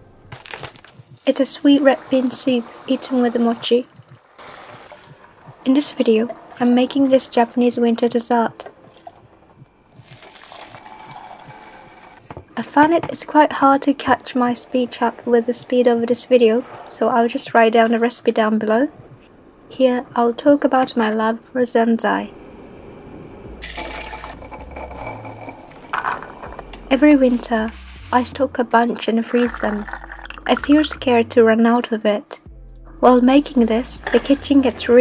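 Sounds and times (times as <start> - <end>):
water and beans pouring into colander: 10.1 - 12.2, 23.6 - 26.4, 29.2 - 30.8.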